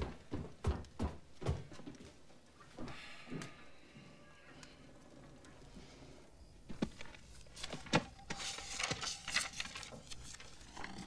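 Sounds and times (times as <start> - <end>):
paper rustling and crackling: 6.7 - 11.0.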